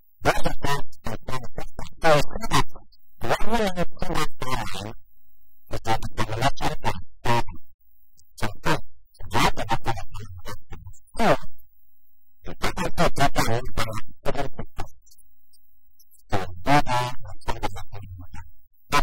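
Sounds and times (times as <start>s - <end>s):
man talking: 0.2s - 5.0s, 5.7s - 7.6s, 8.2s - 11.5s, 12.4s - 15.1s, 16.2s - 19.0s.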